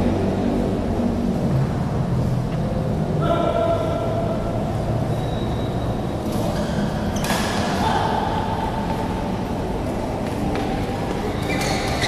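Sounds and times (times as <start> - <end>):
low rumble of indoor hall: 0.0 - 12.0.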